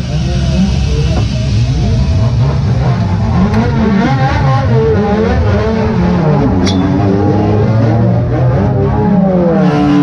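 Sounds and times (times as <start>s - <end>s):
race car engine revving: 0.0s - 10.0s.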